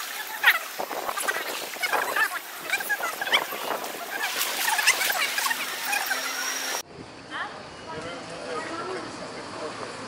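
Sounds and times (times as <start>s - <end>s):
pool water splashing: 0.0s - 6.8s
voices: 0.0s - 10.0s.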